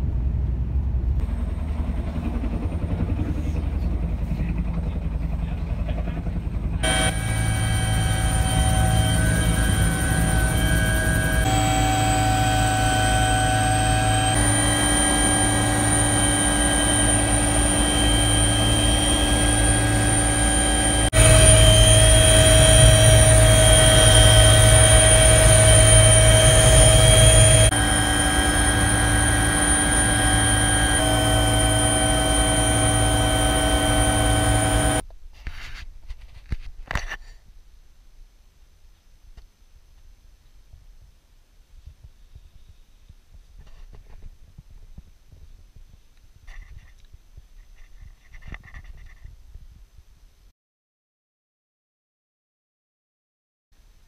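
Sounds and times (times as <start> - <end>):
helicopter rotor rumble: 1.2 - 35.0
helicopter turbine whine: 1.2 - 35.0.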